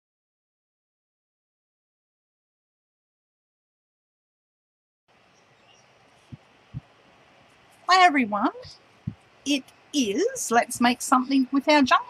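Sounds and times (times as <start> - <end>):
faint background hiss: 5.1 - 12.0
woman speaking: 7.9 - 8.7, 9.5 - 12.0.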